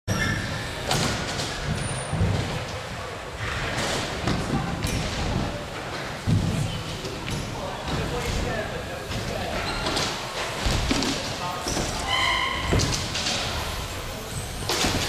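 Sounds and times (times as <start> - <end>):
bikes thudding on ramps: 0.1 - 15.0.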